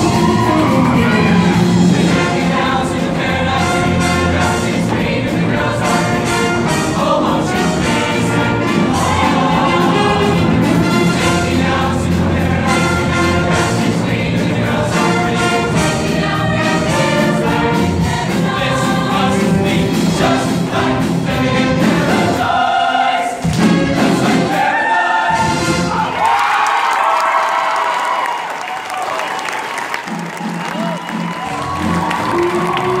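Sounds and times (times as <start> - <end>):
audience applause and cheering: 0.0 - 2.9, 8.4 - 11.4, 24.5 - 33.0
choir singing with live band: 0.0 - 26.2.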